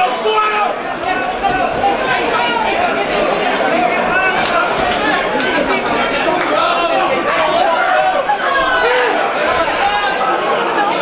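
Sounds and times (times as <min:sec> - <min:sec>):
crowd chattering and shouting: 0:00.0 - 0:11.0.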